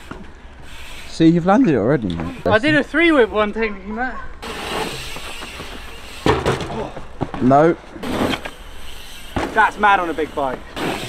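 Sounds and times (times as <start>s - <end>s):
bike tyres rolling on dirt: 4.4s - 11.0s.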